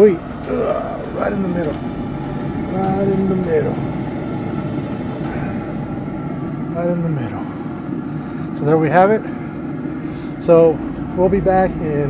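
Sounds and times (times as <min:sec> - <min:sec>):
grill fan whine: 0:00.0 - 0:12.0
low rumble: 0:00.0 - 0:12.0.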